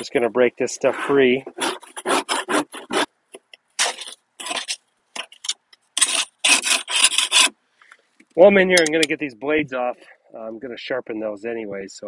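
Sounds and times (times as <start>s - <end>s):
hand scraper scraping grass clippings: 0.7s - 3.1s, 3.8s - 7.5s.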